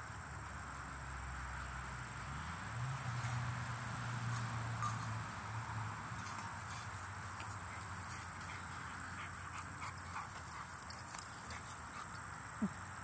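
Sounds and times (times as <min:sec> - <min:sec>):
high insect drone: 0:00.0 - 0:13.0.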